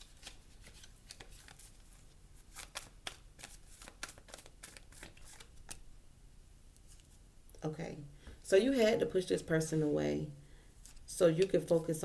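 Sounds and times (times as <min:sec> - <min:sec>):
cards being shuffled: 0:00.0 - 0:05.8.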